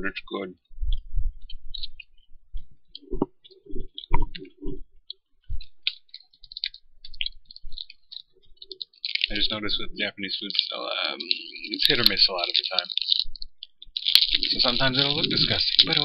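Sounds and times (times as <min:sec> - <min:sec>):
throat sounds: 0:00.0 - 0:06.2, 0:07.1 - 0:16.0
person chewing jelly: 0:00.8 - 0:09.4, 0:10.6 - 0:16.0.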